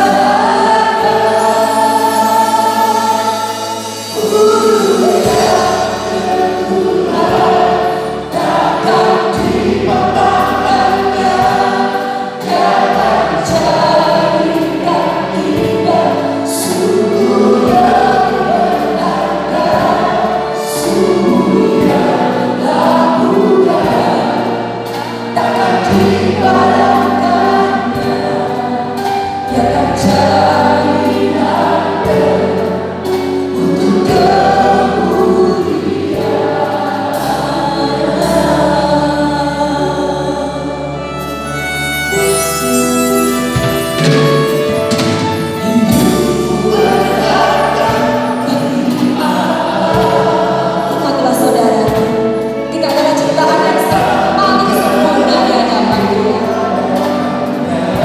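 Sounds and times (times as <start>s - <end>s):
vocal group singing in harmony: 0.0s - 42.3s, 43.6s - 58.0s
accompaniment with bass line: 0.0s - 58.0s.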